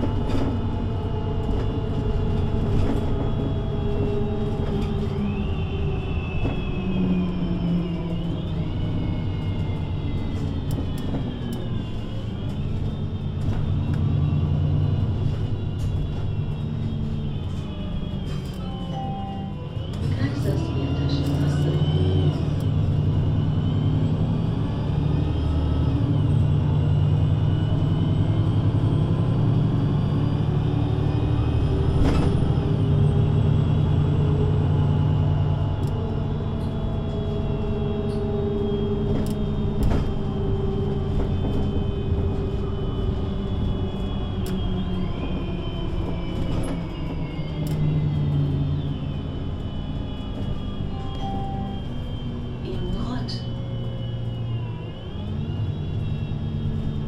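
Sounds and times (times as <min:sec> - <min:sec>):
bus engine with gear changes: 0:00.0 - 0:57.0.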